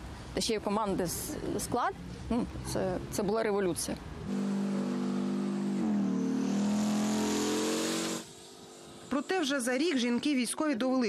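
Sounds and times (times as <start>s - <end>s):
tank engine revving: 2.5s - 9.2s
rising hiss: 4.5s - 9.5s.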